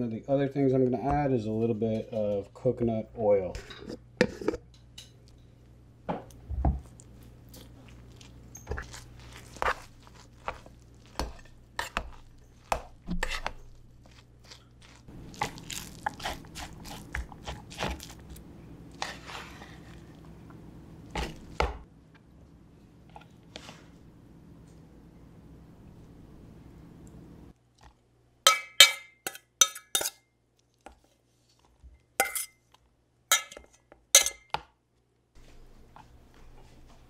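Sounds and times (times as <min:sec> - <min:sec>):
steady low hum: 0:00.0 - 0:27.6.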